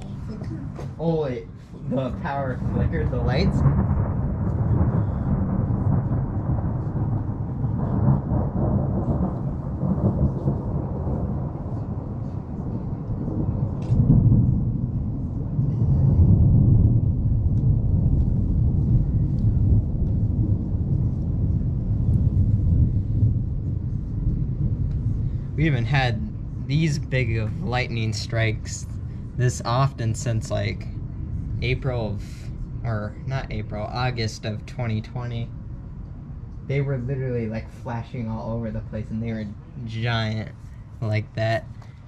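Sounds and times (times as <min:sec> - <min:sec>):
deep thunder rumbling: 0:00.0 - 0:42.0.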